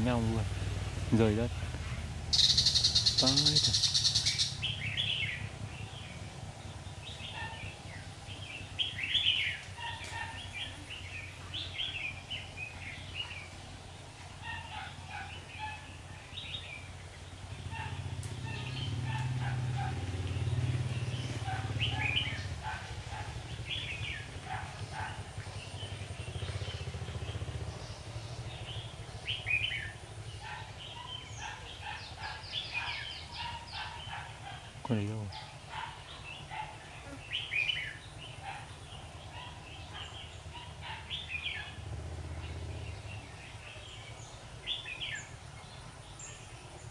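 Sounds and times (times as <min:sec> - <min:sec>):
birds chirping: 0:00.0 - 0:46.9.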